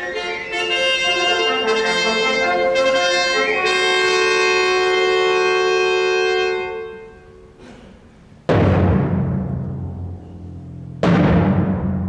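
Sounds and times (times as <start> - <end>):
wind band playing sustained chords: 0.0 - 7.6.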